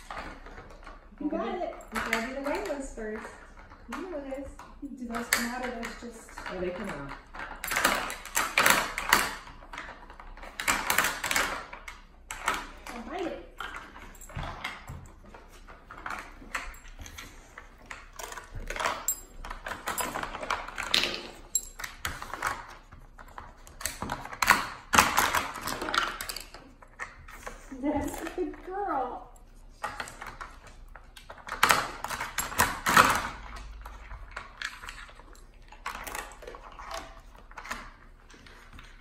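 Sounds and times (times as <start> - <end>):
plastic puzzle clacks and rattles: 0.0 - 28.7, 29.7 - 39.0.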